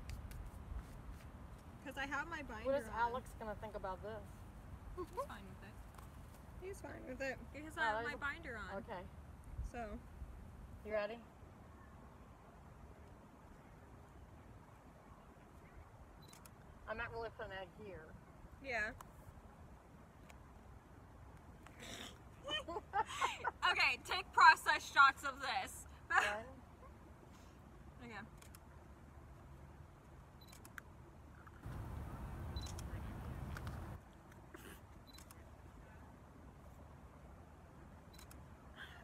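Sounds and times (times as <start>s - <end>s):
camera autofocus beep: 16.2s - 16.5s, 30.4s - 30.8s, 32.5s - 33.8s, 35.0s - 35.4s, 38.1s - 38.4s
camera shutter clicks: 30.4s - 30.8s, 32.6s - 33.9s, 35.0s - 35.4s.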